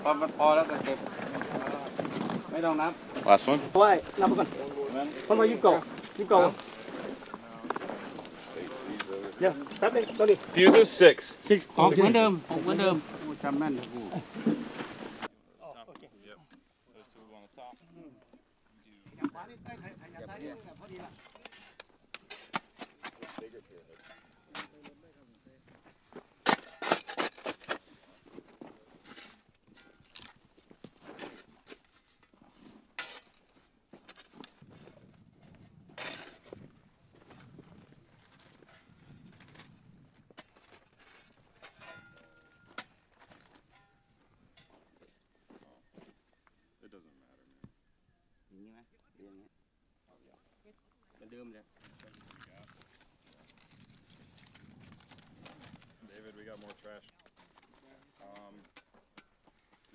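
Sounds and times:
soil scraping: 0:00.0 - 0:15.3, 0:19.1 - 0:45.3, 0:51.8 - 0:58.8.

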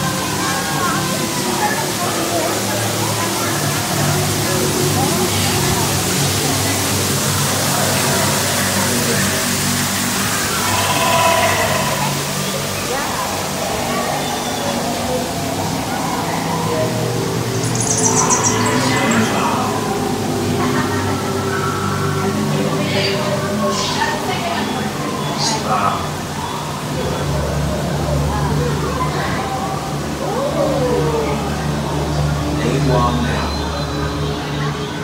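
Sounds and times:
ambient music with low tones: 0:00.0 - 0:25.4
falling water rushing: 0:00.0 - 0:33.3
high-pitched twittering: 0:10.2 - 0:12.6, 0:17.4 - 0:20.1.

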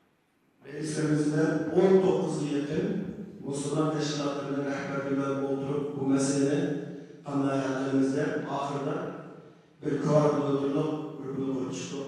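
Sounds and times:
man speaking into a microphone: 0:00.6 - 0:06.7, 0:07.3 - 0:09.0, 0:09.8 - 0:12.0.

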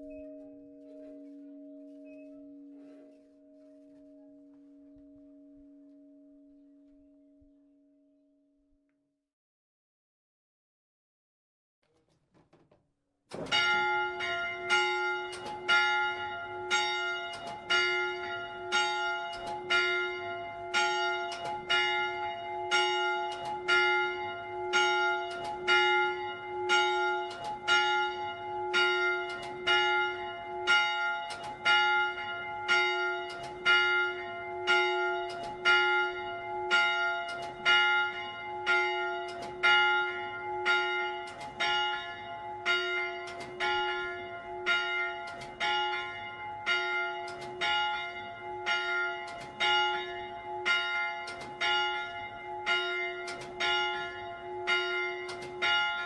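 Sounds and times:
church bell ringing: 0:00.0 - 0:08.4, 0:13.3 - 0:56.0.

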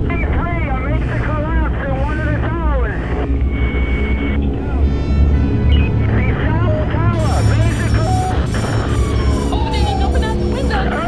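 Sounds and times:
deep steady rumble: 0:00.0 - 0:11.0
high-pitched wailing voices: 0:06.4 - 0:11.0.

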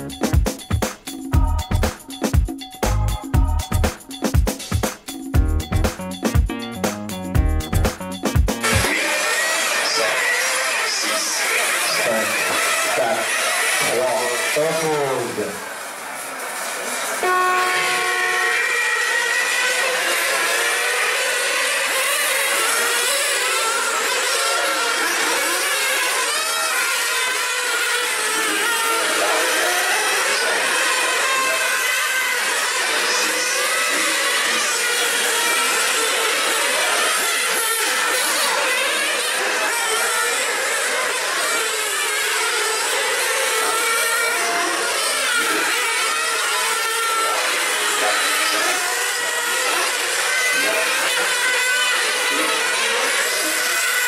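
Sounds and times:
rc car engines revving: 0:07.2 - 0:54.0.

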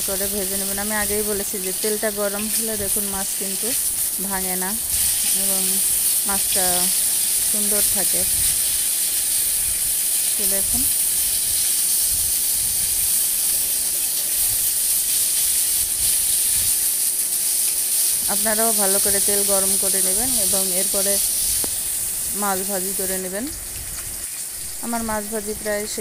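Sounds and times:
fish frying in hot oil: 0:00.0 - 0:26.0.

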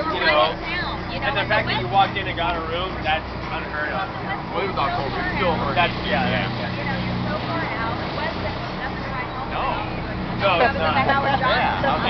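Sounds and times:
boat engine droning: 0:00.0 - 0:12.0
people talking: 0:00.0 - 0:12.0.

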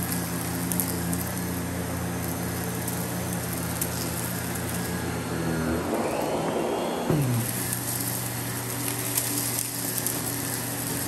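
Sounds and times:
vacuum cleaner running: 0:00.0 - 0:11.0.

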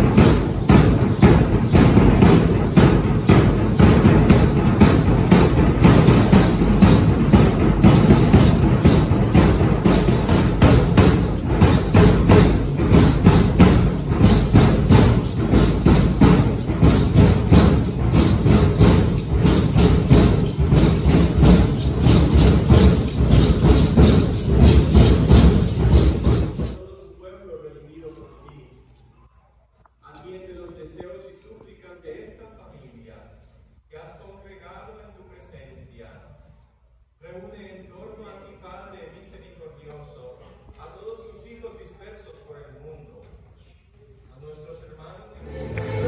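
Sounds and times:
fast drumbeat: 0:00.0 - 0:26.8
rattling percussion: 0:00.0 - 0:26.8, 0:45.4 - 0:46.0.

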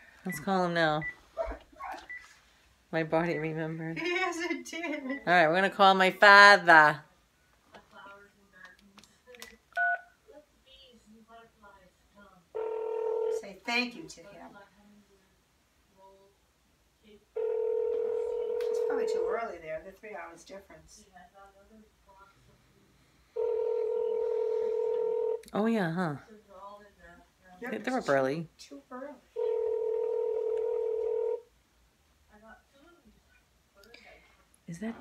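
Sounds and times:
telephone ringback tone: 0:12.6 - 0:13.4, 0:17.4 - 0:19.4, 0:23.4 - 0:25.4, 0:29.3 - 0:31.4.

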